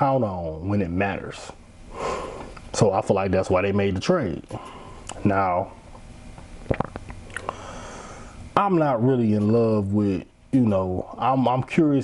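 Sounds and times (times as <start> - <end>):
man breathing: 1.9 - 2.6, 4.5 - 5.1, 7.4 - 8.5
man's soft mouth clicks: 6.7 - 7.6.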